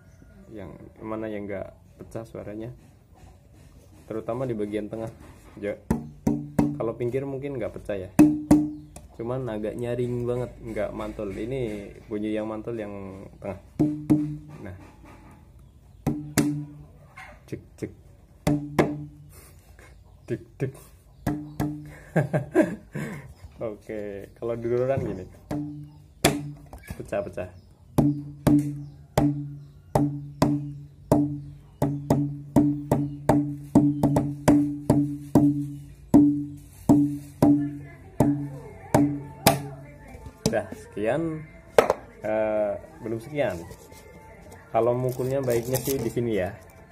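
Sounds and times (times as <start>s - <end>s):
plastic bottle drummed by hand: 5.9s - 7.0s, 8.2s - 9.1s, 13.8s - 14.6s, 16.0s - 16.8s, 18.4s - 19.2s, 21.2s - 21.9s, 25.0s - 26.7s, 28.0s - 39.8s, 41.8s - 42.1s.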